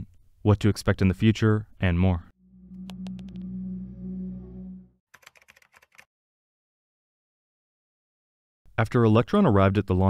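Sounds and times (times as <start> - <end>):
low electronic drone: 2.4 - 5.0
keyboard typing clicks: 5.2 - 6.1.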